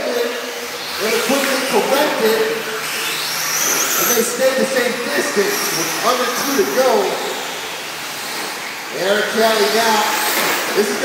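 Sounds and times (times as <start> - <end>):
radio-controlled trucks racing: 0.0 - 11.0.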